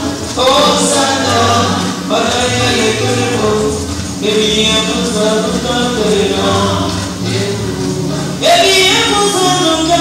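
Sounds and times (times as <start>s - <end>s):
choir singing: 0.0s - 7.8s.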